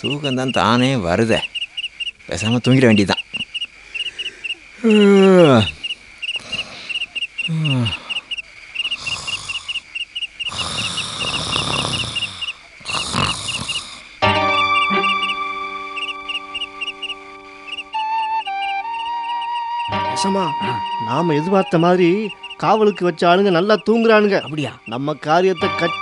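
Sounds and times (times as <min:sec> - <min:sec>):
cricket chirping: 0:00.0 - 0:26.0
low calls falling in pitch: 0:03.3 - 0:05.8, 0:14.2 - 0:26.0
soft music of held chords: 0:14.2 - 0:26.0.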